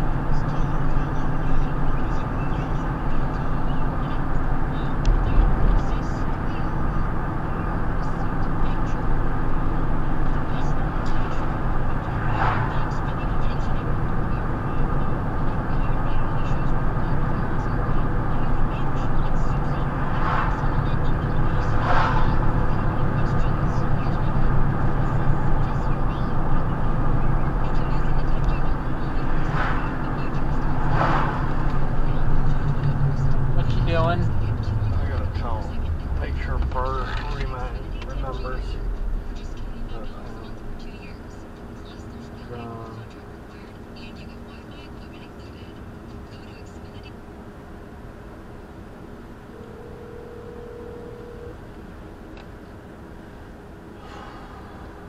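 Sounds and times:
muffled voice: 0.0 - 47.2
car cabin road and engine noise: 0.0 - 55.0.

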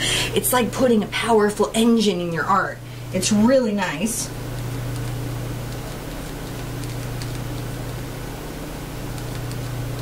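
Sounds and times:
low electrical hum and hiss: 0.0 - 10.0.

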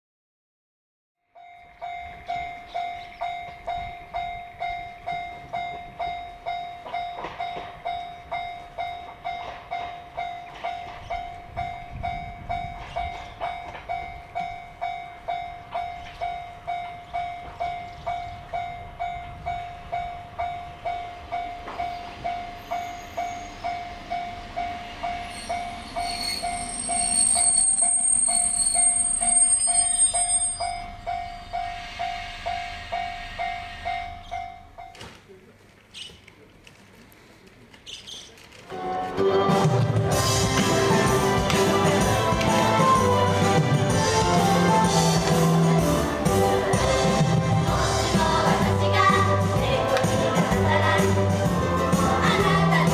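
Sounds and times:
railcar engine and wheels: 1.2 - 52.9
level crossing warning bell: 1.3 - 35.2
high brake squeal: 21.9 - 23.9, 24.7 - 34.6.

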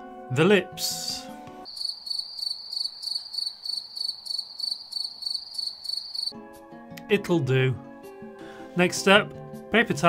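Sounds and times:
cricket chirping: 1.7 - 6.3.

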